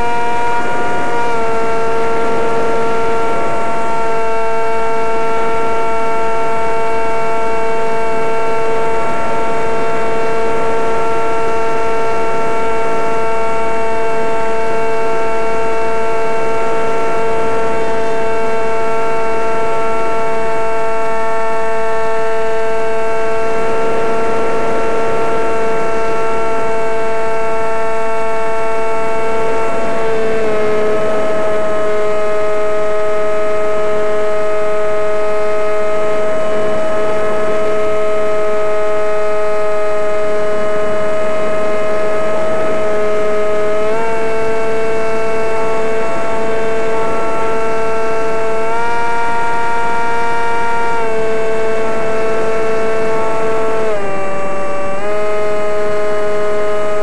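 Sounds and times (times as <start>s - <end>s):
wind noise: 0.0s - 56.1s
model airplane motor whine: 0.0s - 57.0s.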